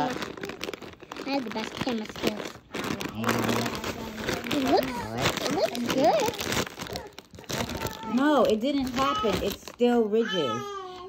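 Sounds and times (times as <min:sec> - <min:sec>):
foil chip bag crinkling: 0:00.0 - 0:10.9.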